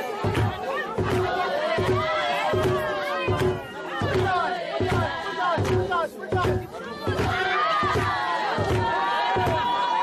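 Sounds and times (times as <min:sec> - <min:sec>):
crowd singing and shouting: 0:00.0 - 0:10.0.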